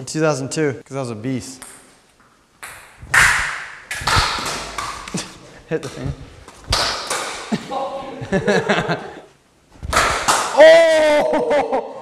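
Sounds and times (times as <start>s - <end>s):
ball striking hard surfaces: 1.6s - 2.0s, 2.6s - 7.6s, 9.8s - 10.6s
plastic bat whacking ball: 2.6s - 5.3s, 6.7s - 7.5s, 9.8s - 10.6s
low thuds: 3.0s - 5.2s.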